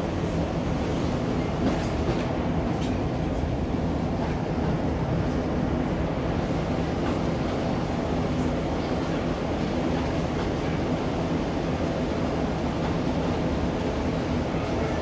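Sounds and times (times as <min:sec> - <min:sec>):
train rumble inside carriage: 0:00.0 - 0:15.0.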